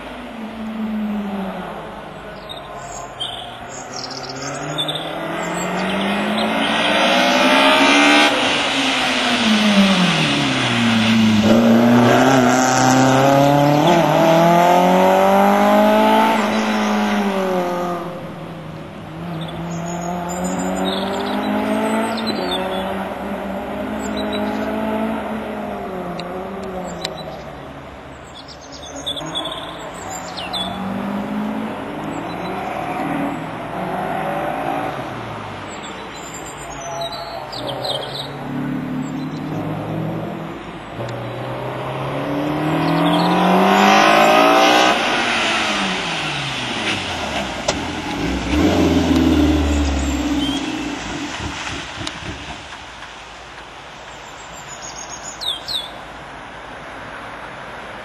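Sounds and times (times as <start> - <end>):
car engine revving: 0.0 - 36.7, 37.4 - 53.5.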